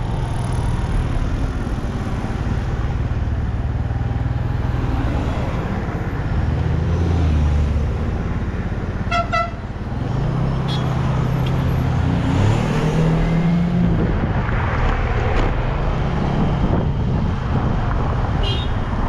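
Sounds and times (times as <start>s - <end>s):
vehicle engine and wind rumble: 0.0s - 19.0s
car horn short beeps: 9.1s - 9.6s, 10.7s - 10.9s.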